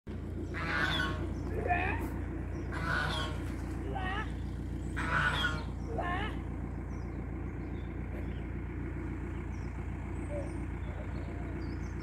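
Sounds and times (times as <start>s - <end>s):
steady low rumble: 0.1s - 12.0s
ducks calling: 0.2s - 12.0s.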